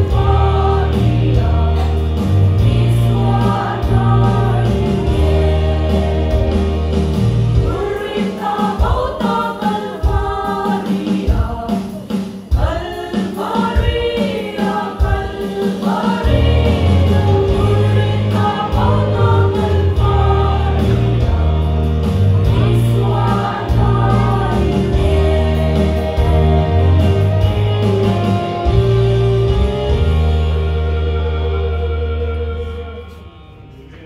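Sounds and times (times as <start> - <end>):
instrumental accompaniment with bass: 0.0 - 12.8, 13.4 - 34.0
women singing together: 0.0 - 27.6.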